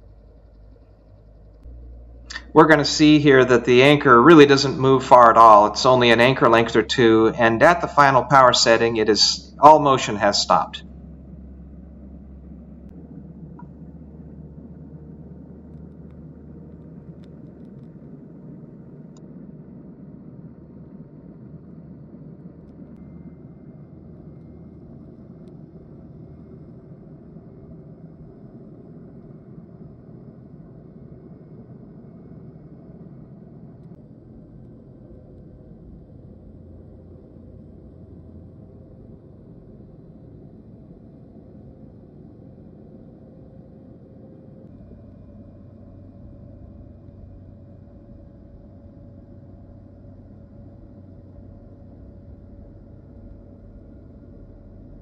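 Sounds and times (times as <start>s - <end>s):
boat engine rumbling underwater: 0.0s - 29.1s.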